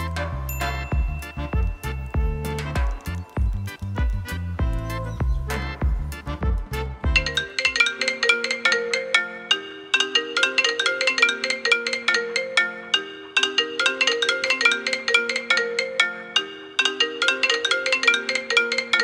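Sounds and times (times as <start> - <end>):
phone ringtone melody: 0.5 - 6.4, 7.1 - 19.0.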